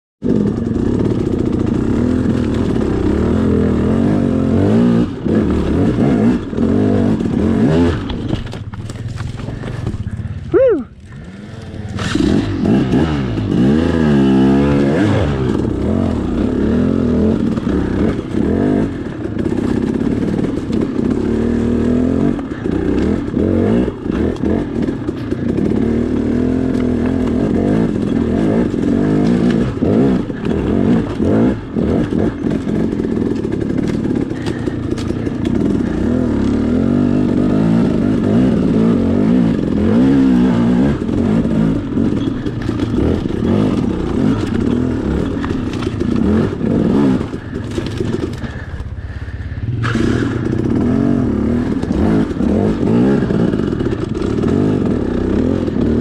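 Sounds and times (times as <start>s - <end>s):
dirt bike engine revving: 0.2s - 56.0s.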